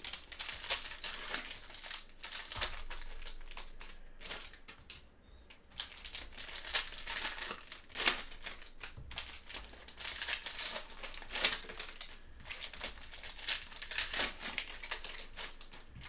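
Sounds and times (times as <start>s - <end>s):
foil wrappers crinkling: 0.0s - 16.0s.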